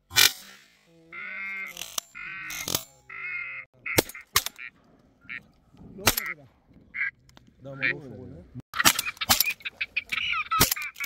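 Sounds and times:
duck calls: 1.1 - 5.5, 6.1 - 8.0, 8.8 - 11.0.

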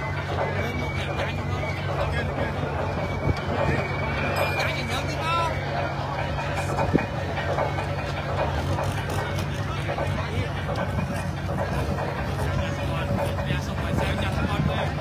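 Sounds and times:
crowd chatter: 0.0 - 15.0
engine idling: 0.0 - 15.0.

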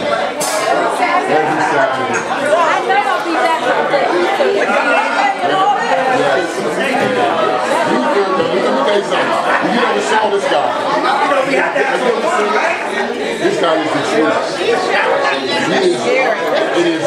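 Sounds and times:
crowd chatter in echoing room: 0.0 - 17.0.

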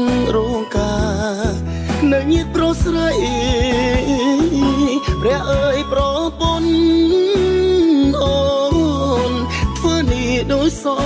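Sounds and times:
bass and backing accompaniment: 0.0 - 11.0.

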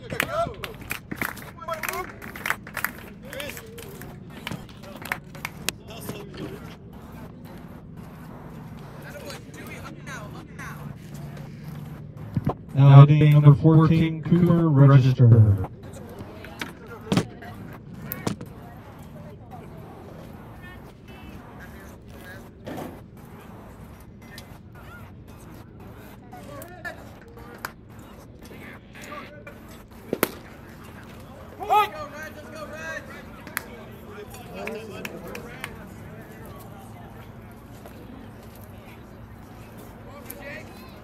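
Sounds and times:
faint voices of crowd: 0.0 - 41.0.

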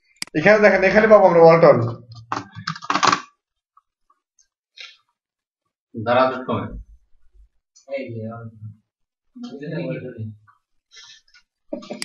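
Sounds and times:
computer keyboard typing: 2.2 - 3.3.

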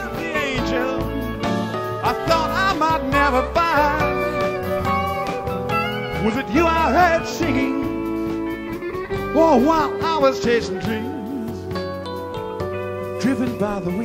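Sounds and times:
electric guitar bending notes: 0.0 - 14.0
live rock band: 0.0 - 14.0.

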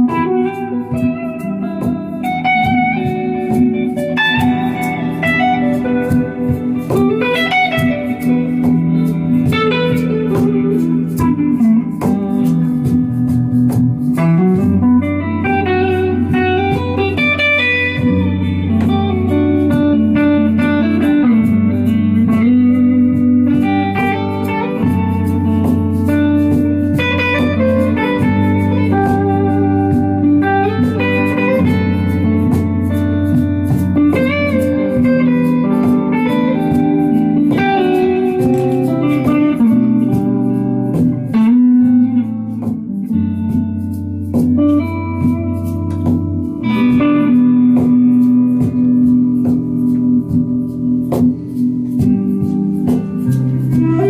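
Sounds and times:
bluesy electric guitar lead: 0.0 - 54.0.

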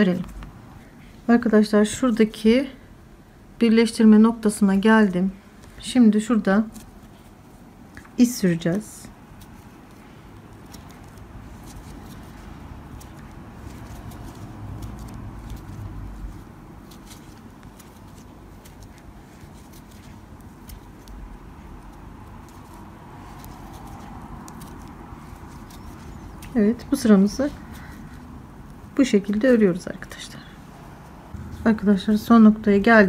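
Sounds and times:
soft handling rumble: 4.7 - 33.0
rustling and scratching of cord: 4.8 - 33.0.

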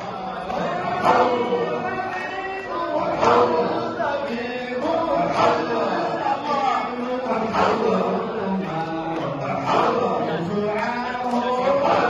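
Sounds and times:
men chanting together: 0.0 - 12.0.

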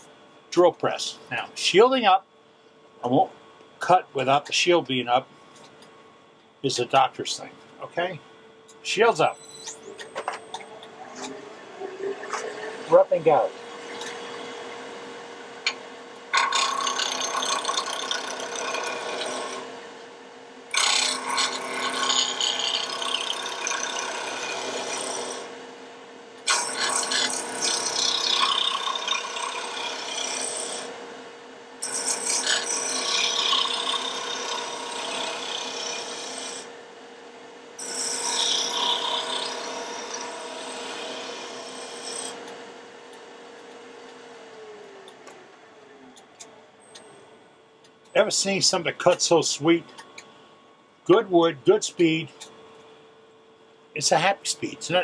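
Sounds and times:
lathe motor hum: 9.8 - 31.1, 31.8 - 47.5
turning tool cutting wood: 15.6 - 19.7, 20.7 - 25.5, 26.5 - 30.9, 31.8 - 36.7, 37.8 - 42.5.

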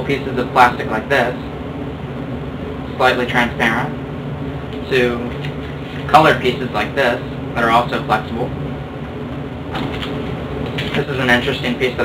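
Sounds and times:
low room hum: 0.0 - 12.0
plastic sheets rustling: 9.7 - 11.2.

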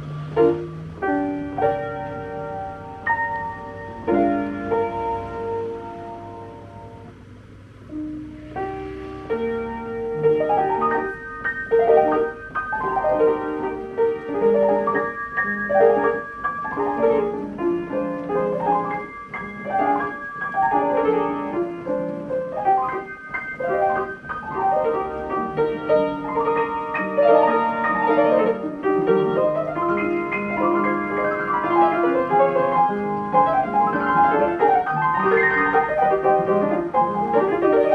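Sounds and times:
player piano classical piece: 0.0 - 37.9.

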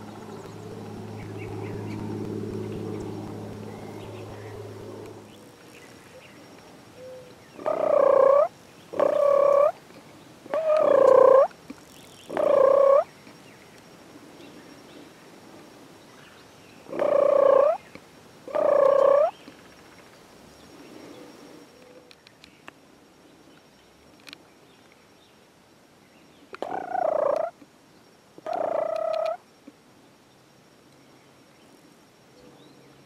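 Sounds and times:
turkey gobbling: 7.6 - 9.7.

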